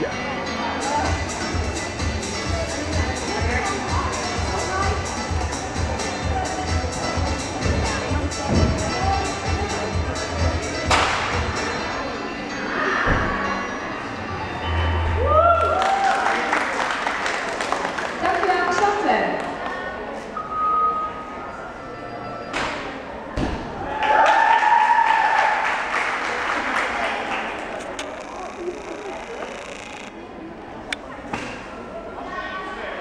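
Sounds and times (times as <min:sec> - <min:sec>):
background music with steady beat: 0:00.8 - 0:12.5
spectators applauding and cheering: 0:15.0 - 0:19.7, 0:23.8 - 0:30.0.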